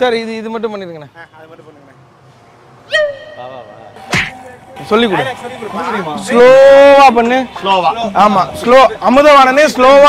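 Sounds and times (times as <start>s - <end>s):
pitched tone dropping: 2.9s - 7.2s.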